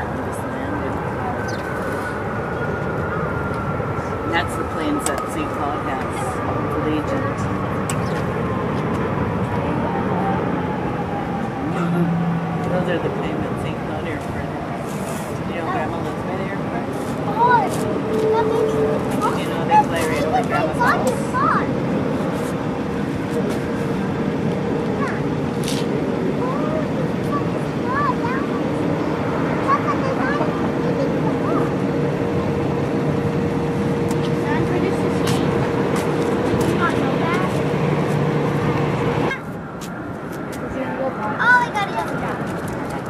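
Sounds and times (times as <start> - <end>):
jet engine whine: 0.0 - 43.0
jet engines rumbling: 0.0 - 43.0.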